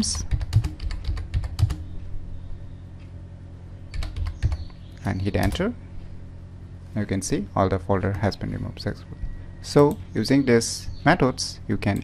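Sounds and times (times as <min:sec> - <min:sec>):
keyboard keys clicking: 0:00.0 - 0:01.8, 0:03.9 - 0:04.6
faint low hum: 0:00.0 - 0:12.0.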